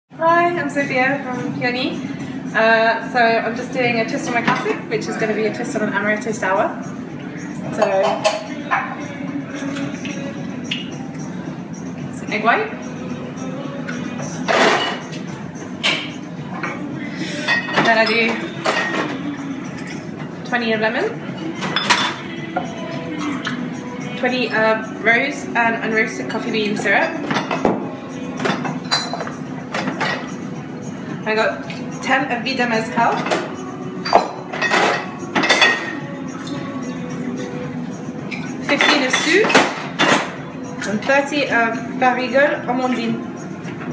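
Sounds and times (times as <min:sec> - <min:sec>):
background music: 0:00.1 - 0:43.9
glass and metal barware clinking: 0:07.3 - 0:12.5, 0:13.4 - 0:20.5, 0:21.4 - 0:24.8, 0:25.8 - 0:31.0, 0:32.9 - 0:41.9.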